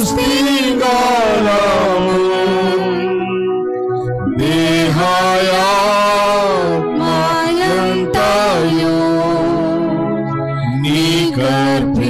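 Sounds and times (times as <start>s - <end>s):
person singing a hymn: 0.0s - 12.0s
sustained accompaniment: 0.0s - 12.0s.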